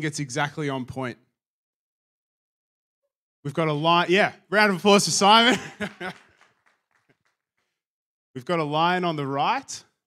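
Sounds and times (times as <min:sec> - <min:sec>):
man speaking over microphone: 0:00.0 - 0:01.2, 0:03.5 - 0:06.0, 0:08.4 - 0:09.9.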